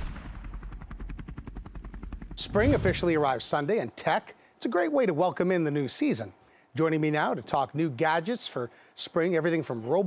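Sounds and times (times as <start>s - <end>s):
helicopter rotor chopping: 0.0s - 3.6s.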